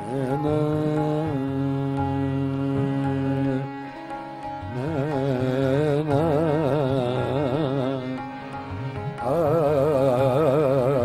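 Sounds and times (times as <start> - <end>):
harmonium: 0.0 - 11.0
man singing: 0.0 - 11.0
violin: 0.0 - 11.0.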